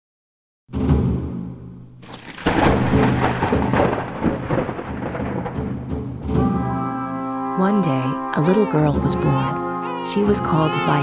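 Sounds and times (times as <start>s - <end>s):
thunder crack and rumble: 2.0s - 6.9s.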